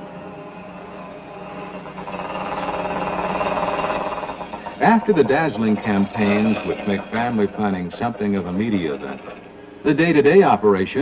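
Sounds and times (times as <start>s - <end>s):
small motorcycle engine running: 0.0s - 9.6s.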